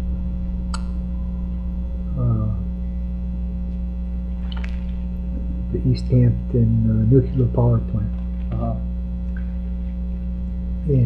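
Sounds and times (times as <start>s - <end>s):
electrical mains hum: 0.0s - 11.0s
person speaking: 2.1s - 2.7s, 4.4s - 8.9s.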